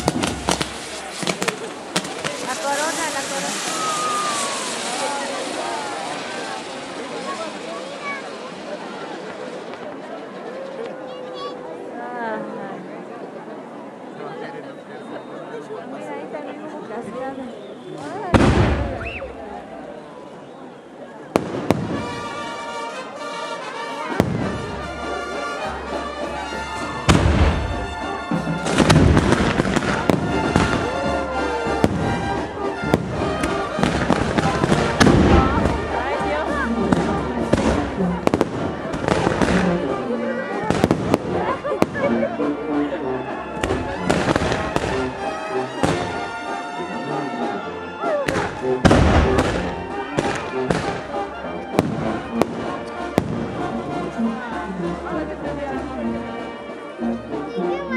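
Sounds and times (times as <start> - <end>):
fireworks crackling and banging: 0.0 - 11.6, 17.0 - 56.8.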